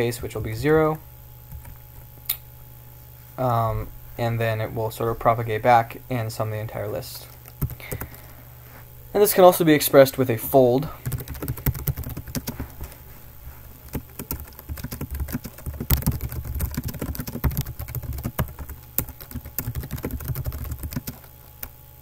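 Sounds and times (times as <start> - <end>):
typing on computer keyboard: 7.6 - 8.1, 11.0 - 12.5, 13.9 - 21.7.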